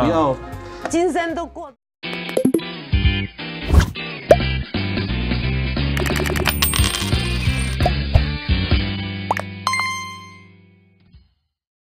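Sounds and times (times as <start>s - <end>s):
rising pop sound effect: 2.1s - 2.8s, 3.7s - 4.5s, 9.3s - 10.4s
chime notes: 9.7s - 10.5s.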